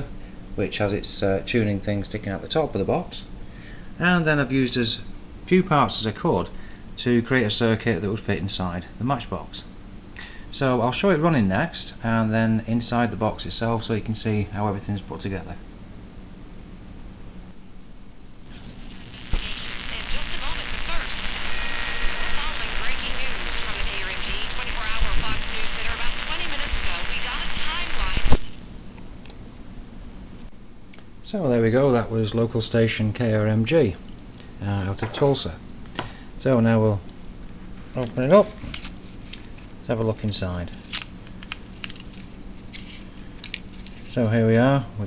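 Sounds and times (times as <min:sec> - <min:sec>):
mains hum: 0:00.0 - 0:45.0
crackling static: 0:17.5 - 0:29.2, 0:36.4 - 0:44.8
radio switching off click: 0:18.6 - 0:28.6
thin radio voices: 0:18.6 - 0:28.6.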